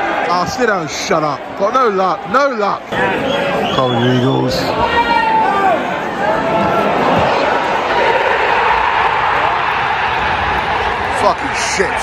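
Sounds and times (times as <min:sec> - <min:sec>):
fans shouting: 0:00.0 - 0:12.0
stadium crowd roaring: 0:00.0 - 0:12.0.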